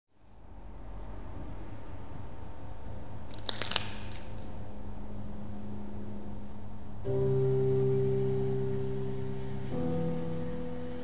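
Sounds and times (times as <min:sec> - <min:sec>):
low steady tone: 0:04.4 - 0:11.0
organ-like keyboard chord: 0:07.0 - 0:11.0.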